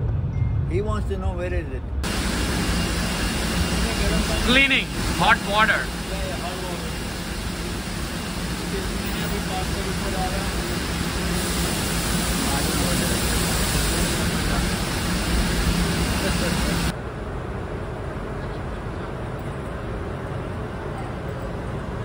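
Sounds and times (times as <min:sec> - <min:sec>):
parts washer rushing noise: 0:02.0 - 0:22.0
workshop background noise: 0:02.0 - 0:22.0.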